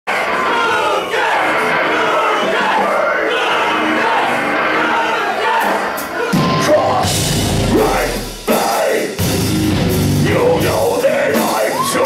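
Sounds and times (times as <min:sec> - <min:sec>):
crowd noise: 0:00.0 - 0:12.0
live band playing loud: 0:01.2 - 0:12.0.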